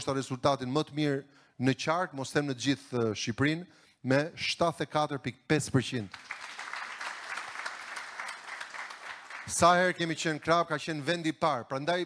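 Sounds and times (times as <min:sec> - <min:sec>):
audience clapping: 0:06.1 - 0:10.4.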